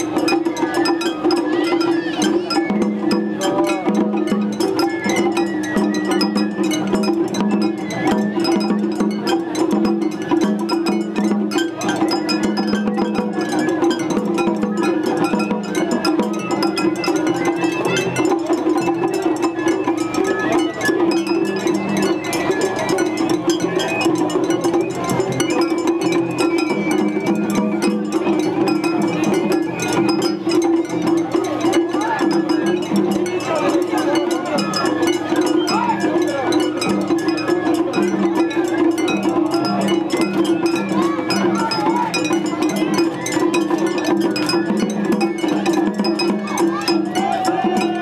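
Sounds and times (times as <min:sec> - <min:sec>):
crowd: 0:00.0 - 0:48.0
taiko drums: 0:00.0 - 0:48.0.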